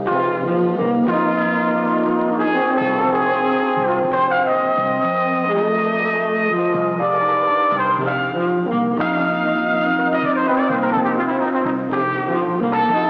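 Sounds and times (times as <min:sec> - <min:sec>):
brass film score music: 0:00.0 - 0:13.0.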